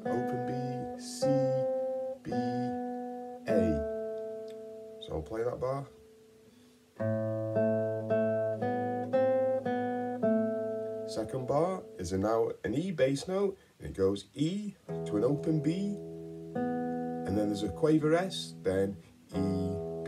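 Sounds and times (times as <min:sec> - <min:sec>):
classical guitar fingerstyle: 0:00.0 - 0:13.5, 0:14.4 - 0:20.0.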